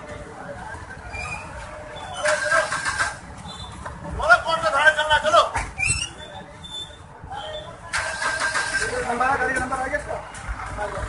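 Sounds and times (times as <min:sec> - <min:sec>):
car engine cranking and starting: 0:02.2 - 0:03.2, 0:07.9 - 0:09.3.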